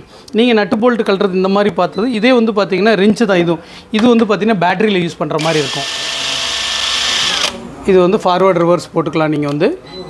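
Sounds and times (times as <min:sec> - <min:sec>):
impact wrench motor whine: 0:05.4 - 0:07.6.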